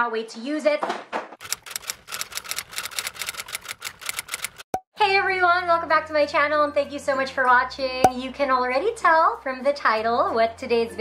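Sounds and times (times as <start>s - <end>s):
rapid typewriter-like clicking: 1.4s - 4.7s.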